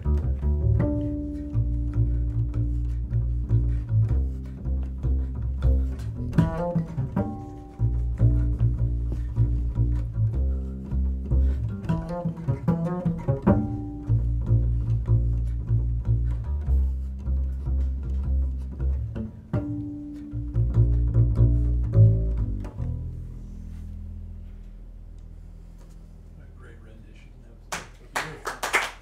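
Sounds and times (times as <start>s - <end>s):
plucked double bass: 0.0s - 27.4s.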